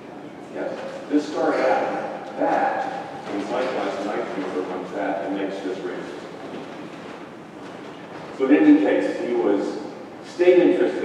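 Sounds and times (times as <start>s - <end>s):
hall room noise hiss and rumble: 0.0s - 11.0s.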